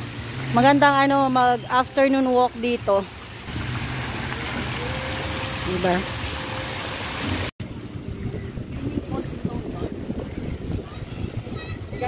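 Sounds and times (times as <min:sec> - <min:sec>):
fountain water hissing: 0:00.0 - 0:12.0
wind buffeting microphone: 0:07.6 - 0:12.0.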